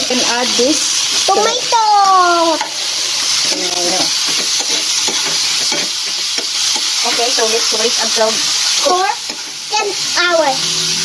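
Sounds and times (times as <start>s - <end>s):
vegetables sizzling in a frying pan: 0.0s - 11.0s
metal spoon scraping a pan: 2.5s - 9.7s.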